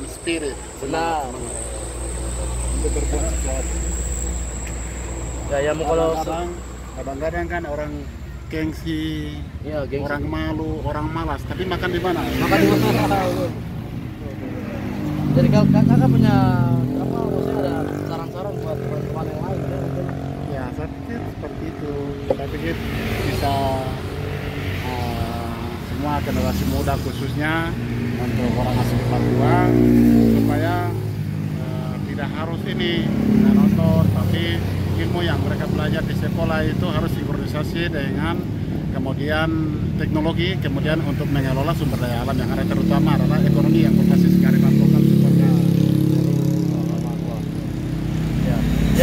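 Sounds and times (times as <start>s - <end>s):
traffic rumble: 0.0s - 49.0s
vehicle engine humming: 0.0s - 49.0s.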